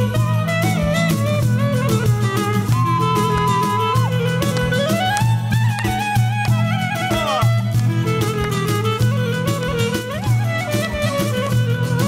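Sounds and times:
folk band instrumental music: 0.0s - 12.0s.

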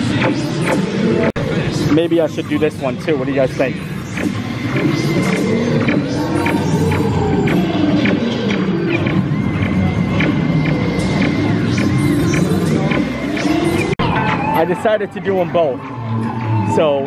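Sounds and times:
synth soundtrack music: 0.0s - 17.0s.

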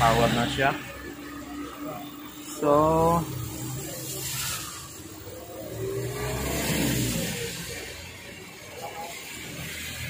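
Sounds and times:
vehicle engine passing by: 2.8s - 10.0s.

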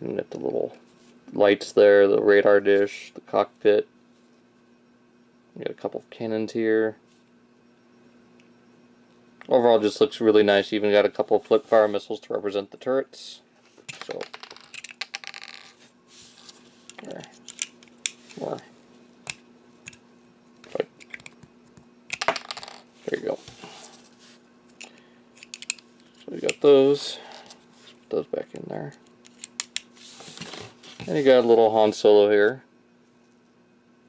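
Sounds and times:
soft brushing noise: 11.3s - 12.1s, 15.8s - 16.9s, 23.0s - 24.5s, 29.9s - 31.7s.

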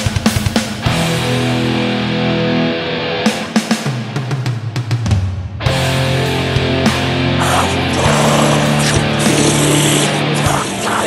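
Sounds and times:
distorted electric guitar chord: 0.9s - 4.1s, 5.7s - 11.0s.

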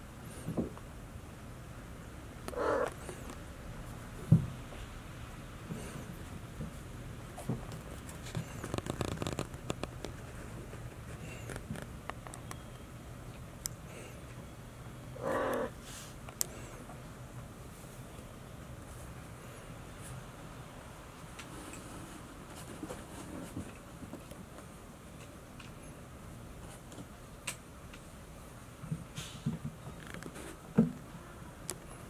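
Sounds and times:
cat meowing: 2.5s - 2.9s, 15.2s - 15.7s
kitten mewing: 2.5s - 3.2s, 15.2s - 15.8s.

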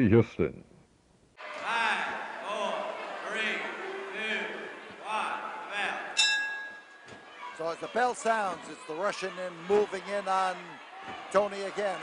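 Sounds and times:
ring bell struck: 6.2s - 7.0s.

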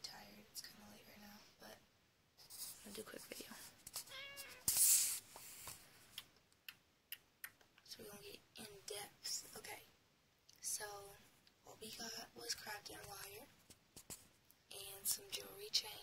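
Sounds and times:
high-pitched meow-like call: 4.1s - 4.6s.

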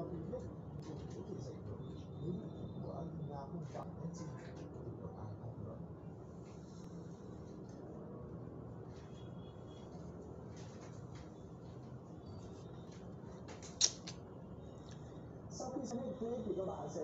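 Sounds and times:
sharp click: 13.5s - 14.2s.

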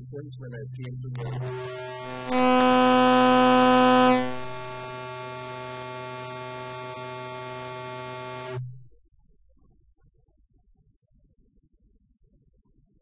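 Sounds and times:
electrical hum from sound system: 1.1s - 8.9s.

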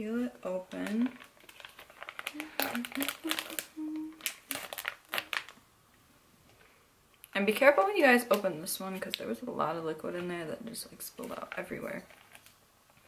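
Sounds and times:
plastic foil crinkling: 0.5s - 5.6s, 11.0s - 12.6s.

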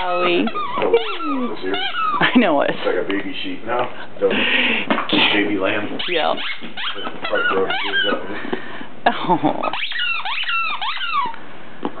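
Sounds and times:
squeaky dog toy squeaking: 0.0s - 2.7s, 6.0s - 8.2s, 9.6s - 11.4s.

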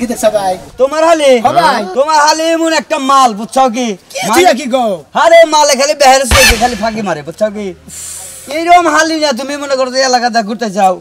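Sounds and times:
man speaking: 0.0s - 7.8s
brief hiss: 7.9s - 8.6s.

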